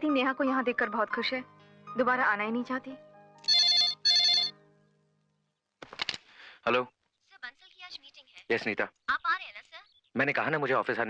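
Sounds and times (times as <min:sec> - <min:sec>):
telephone electronic trill ringing: 0:03.5 - 0:04.6.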